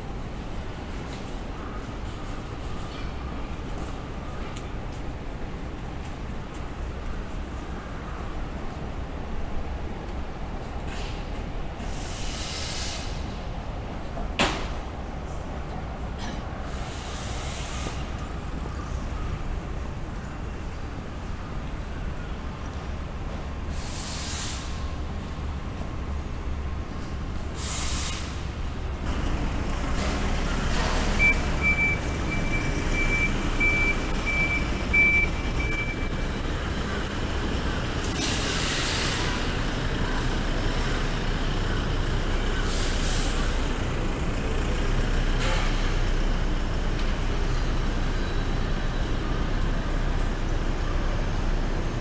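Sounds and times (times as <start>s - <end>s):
street traffic noise: 0.0s - 52.0s
short hiss of air: 11.8s - 13.4s, 16.6s - 18.2s, 23.7s - 25.0s, 27.5s - 28.6s, 38.2s - 39.4s, 42.6s - 43.6s
truck engine rumbling: 25.4s - 52.0s
reversing alarm beeping: 30.4s - 36.9s.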